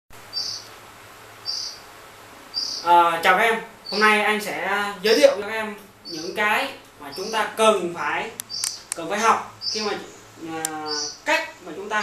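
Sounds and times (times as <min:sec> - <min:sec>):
faint steady low hum: 0:00.2 - 0:12.0.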